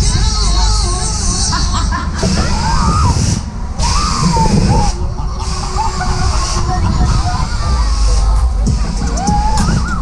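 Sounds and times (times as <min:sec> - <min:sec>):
ride rumbling: 0:00.0 - 0:10.0
riders' voices: 0:00.0 - 0:10.0
air rushing on microphone: 0:02.2 - 0:10.0.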